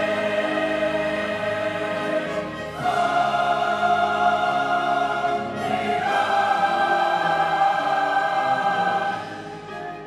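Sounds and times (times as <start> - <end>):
choir singing with orchestra: 0.0 - 10.0.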